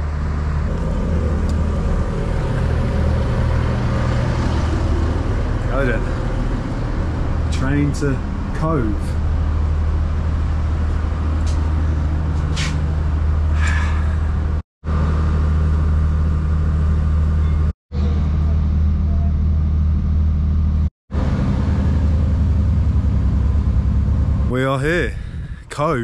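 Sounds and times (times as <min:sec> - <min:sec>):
diesel train running: 0:00.0 - 0:26.0.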